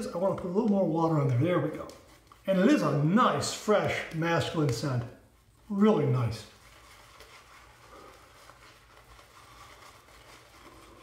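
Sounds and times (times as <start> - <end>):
shaving brush swishing: 0.0 - 11.0.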